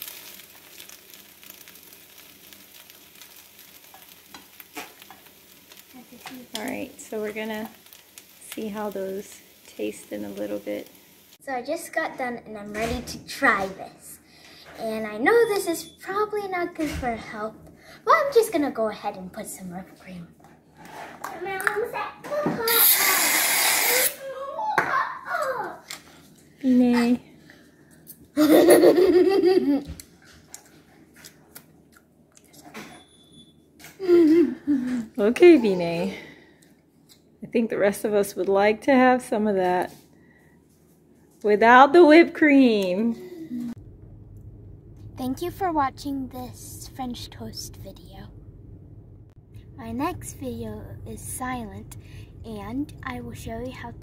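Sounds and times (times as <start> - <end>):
french toast sizzling in skillet: 0.0 - 12.1, 22.6 - 24.2
people talking: 6.0 - 7.7, 8.4 - 10.9, 11.5 - 20.3, 34.1 - 36.2, 37.4 - 39.9, 41.4 - 43.8, 45.2 - 48.3, 49.8 - 54.0
aerosol whipped cream spraying: 22.7 - 24.2
people laughing: 28.4 - 29.8.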